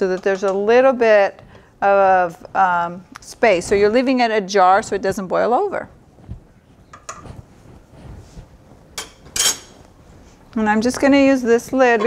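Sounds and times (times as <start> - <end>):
spoon clinking on pot: 9.0 - 9.8
spoon scraping against pot: 9.0 - 9.8.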